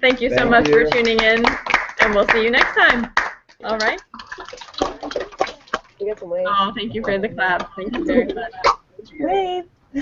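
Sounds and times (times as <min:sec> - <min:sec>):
children applauding: 0:00.4 - 0:02.4, 0:04.3 - 0:05.8.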